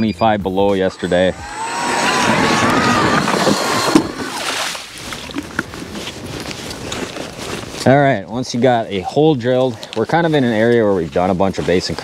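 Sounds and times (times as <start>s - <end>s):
ice auger grinding through ice: 0.8s - 5.9s
wind noise: 0.9s - 7.8s.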